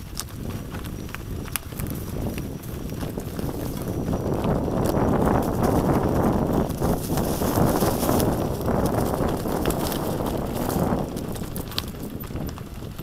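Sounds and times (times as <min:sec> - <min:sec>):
bike rattling over bumps: 0:00.0 - 0:13.0
tyres rolling over dry leaves: 0:00.0 - 0:13.0.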